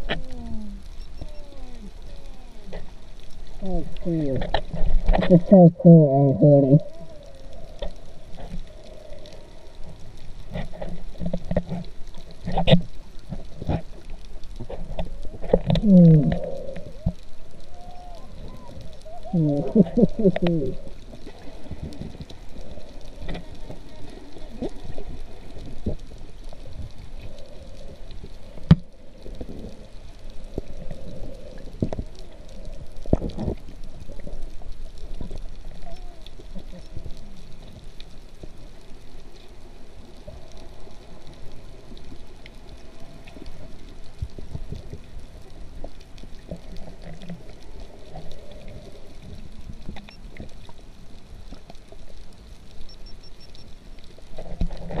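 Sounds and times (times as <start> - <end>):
muffled underwater gurgling: 0.0 - 37.8.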